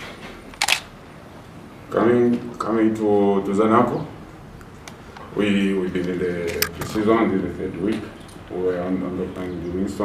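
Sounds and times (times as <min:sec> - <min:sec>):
camera shutter click: 0:00.6 - 0:00.9.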